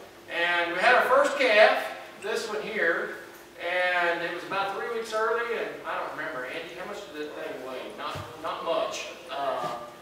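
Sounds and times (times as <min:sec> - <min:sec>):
person speaking: 0:00.3 - 0:10.0.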